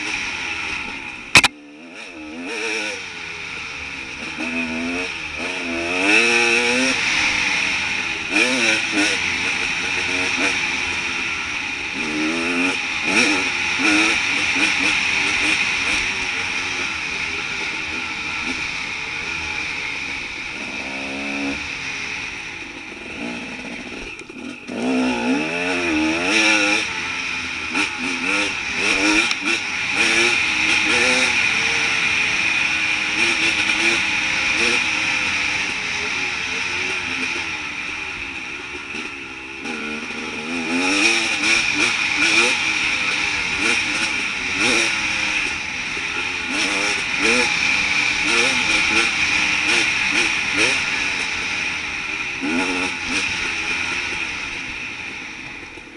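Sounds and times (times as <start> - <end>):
motorcycle engine revving: 0.0 - 55.9.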